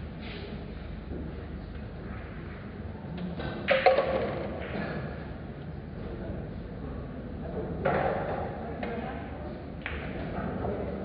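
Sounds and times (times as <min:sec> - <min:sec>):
pool balls clacking: 0:03.6 - 0:04.9.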